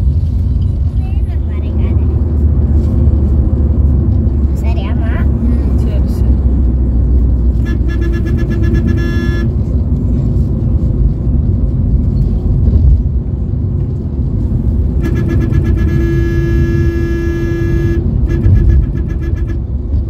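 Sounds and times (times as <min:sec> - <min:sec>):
car road and engine rumble: 0:00.0 - 0:20.0
vehicle horn: 0:07.5 - 0:09.6, 0:15.0 - 0:19.9.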